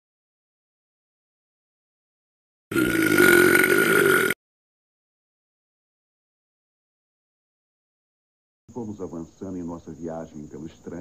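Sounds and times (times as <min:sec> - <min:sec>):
cartoon burp: 0:02.7 - 0:04.4.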